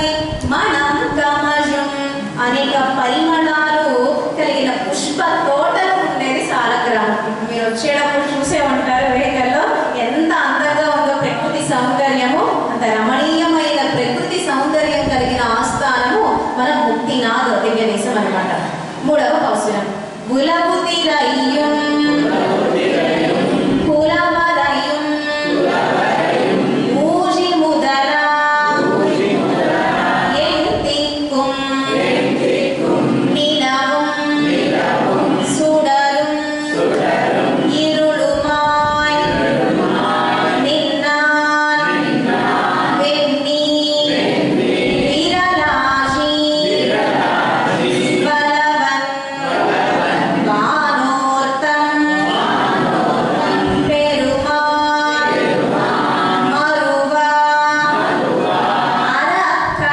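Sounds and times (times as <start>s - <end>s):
woman singing unaccompanied: 30.3s - 32.1s, 32.7s - 34.7s, 35.3s - 37.0s, 37.6s - 42.3s, 42.9s - 44.3s, 44.9s - 47.0s, 48.2s - 49.4s, 50.4s - 52.5s, 53.4s - 55.6s, 56.3s - 58.1s, 59.0s - 59.9s
woman singing into a microphone: 37.6s - 39.4s, 53.6s - 55.4s, 56.5s - 58.0s, 59.1s - 59.9s.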